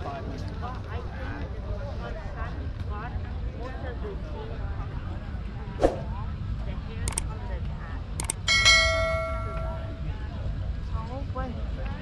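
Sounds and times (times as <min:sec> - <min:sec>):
notification bell ding: 0:08.5 - 0:10.0.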